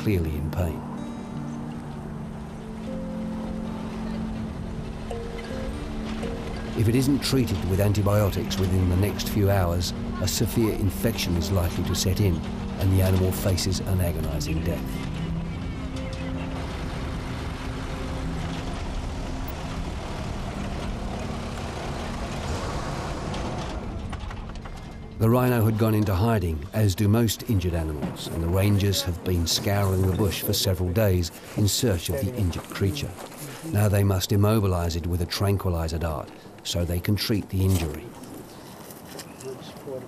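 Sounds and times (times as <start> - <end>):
low synthesizer notes: 0.0 - 31.2
off-road vehicle engine: 0.0 - 37.0
vehicle rattling: 0.0 - 40.0
low rumble: 1.0 - 30.4.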